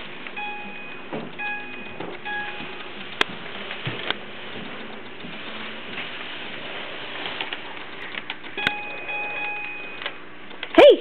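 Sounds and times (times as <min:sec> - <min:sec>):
toy panel electronic beeps: 0:00.4 - 0:02.7.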